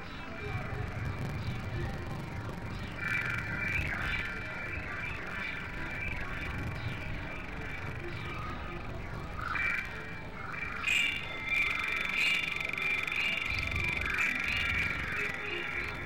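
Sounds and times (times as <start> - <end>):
rumbling noise bed: 0.0 - 9.5.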